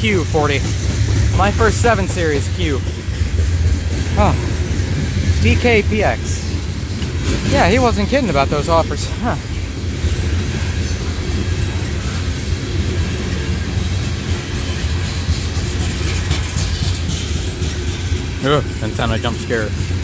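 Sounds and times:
freight train wheels rumbling: 0.0s - 20.0s.

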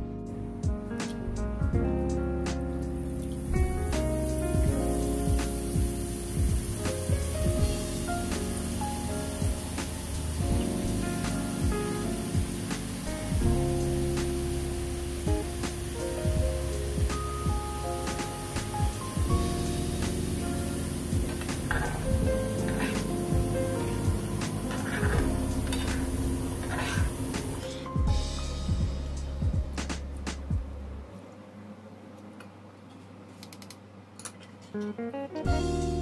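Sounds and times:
background instrumental music: 0.0s - 31.0s, 34.8s - 36.0s
batter sizzling in hot oil: 3.0s - 29.2s.

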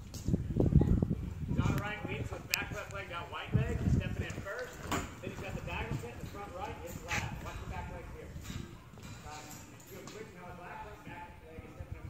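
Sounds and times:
people talking: 0.6s - 12.0s
hoofbeats on soft dirt: 3.6s - 7.7s.

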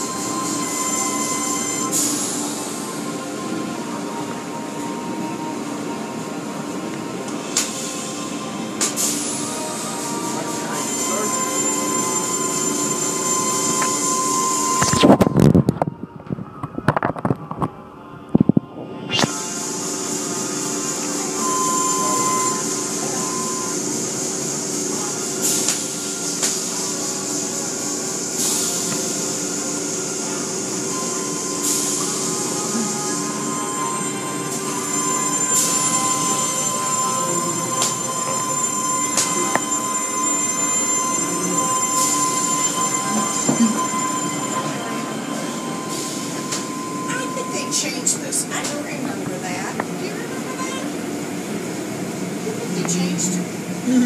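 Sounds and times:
machine whine and hum: 0.0s - 54.0s.

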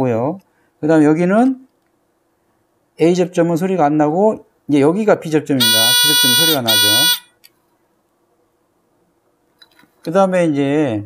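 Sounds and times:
continuity tester beep: 5.6s - 7.3s.

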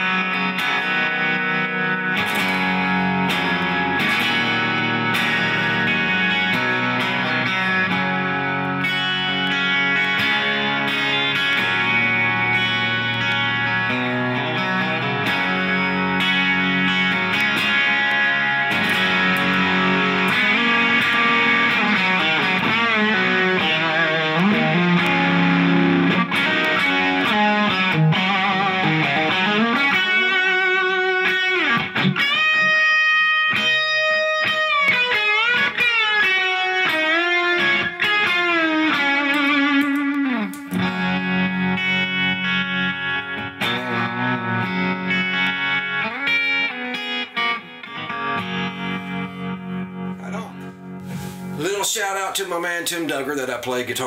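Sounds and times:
electric guitar: 0.0s - 52.4s.

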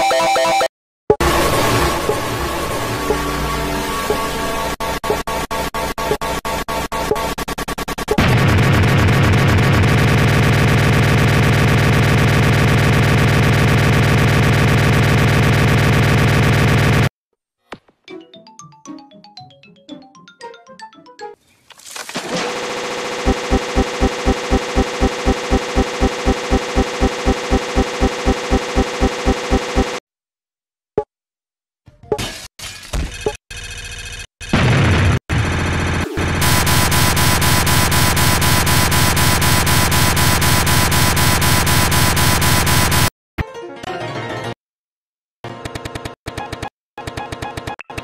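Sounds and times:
looping computer audio buzz: 23.2s - 30.0s, 35.5s - 43.1s
choppy glitching fragments: 35.5s - 43.1s.

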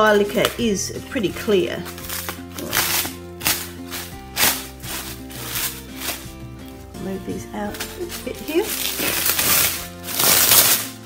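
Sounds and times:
background music: 0.0s - 11.0s
cling wrap crinkling: 1.8s - 11.0s.

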